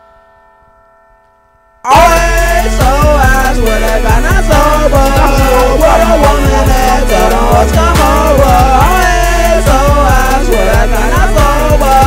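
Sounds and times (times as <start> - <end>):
held bell-like chord: 0.0 - 9.7
hip-hop beat: 1.9 - 12.0
rapped vocals: 1.9 - 12.0.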